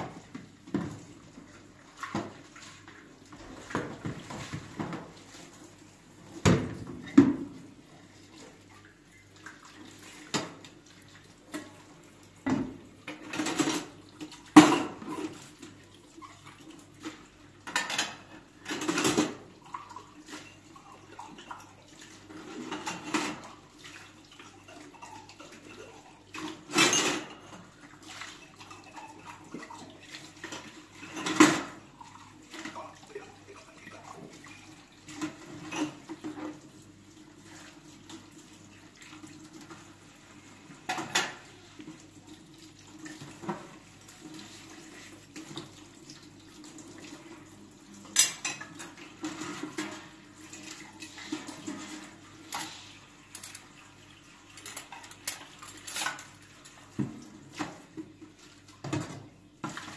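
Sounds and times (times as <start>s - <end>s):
tap water running: 0.0s - 59.9s
dishes clinking in a sink: 6.4s - 7.7s, 11.4s - 15.6s, 17.0s - 36.6s, 40.7s - 42.1s, 46.9s - 59.9s.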